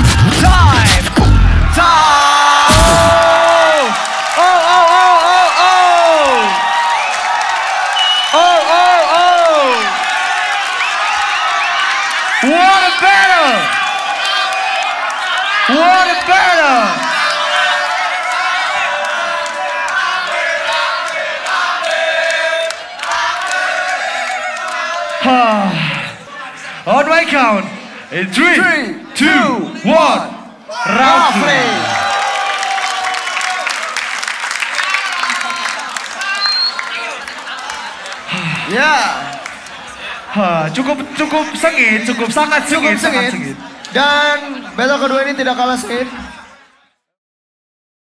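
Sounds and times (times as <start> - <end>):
beatboxing through speakers: 0.0 - 2.0, 38.2 - 39.0
crowd cheering: 0.0 - 47.1.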